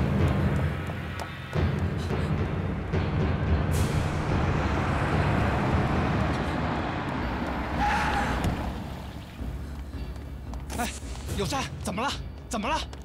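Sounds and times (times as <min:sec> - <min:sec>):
car engine and tyre noise: 0:00.0 - 0:13.0.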